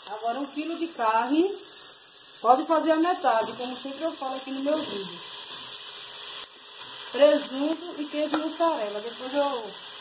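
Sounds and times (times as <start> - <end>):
onion sizzling in hot oil: 0.0 - 10.0.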